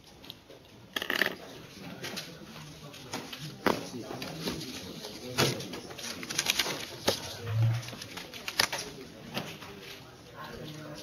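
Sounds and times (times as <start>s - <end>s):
paper and plastic sheets rustling: 2.0s - 10.1s.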